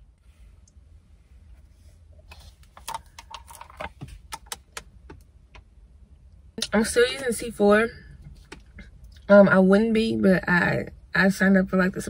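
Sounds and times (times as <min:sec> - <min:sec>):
low rumble in car cabin: 0:00.0 - 0:12.0.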